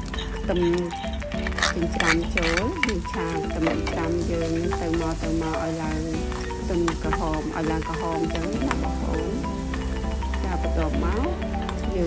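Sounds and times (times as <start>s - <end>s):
pork sizzling in hot oil: 0.0s - 11.8s
background music: 0.0s - 12.0s
metal spatula scraping wok: 1.4s - 4.6s.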